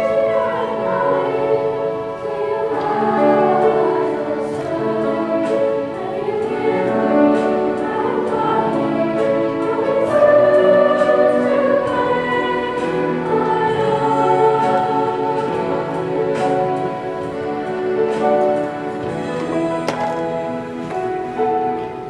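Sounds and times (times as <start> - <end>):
children's choir singing: 0.0 - 22.0
instrumental accompaniment: 0.0 - 22.0.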